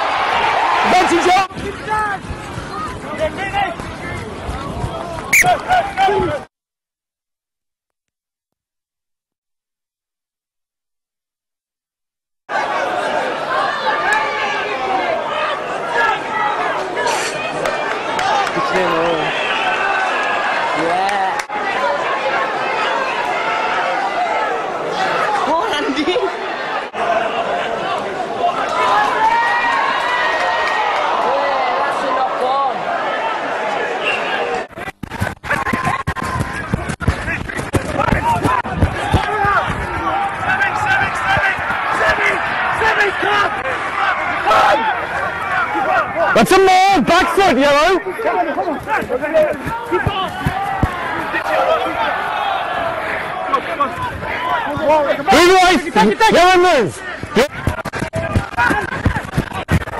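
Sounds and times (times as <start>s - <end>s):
crowd chatter: 0.0s - 6.5s, 12.5s - 59.9s.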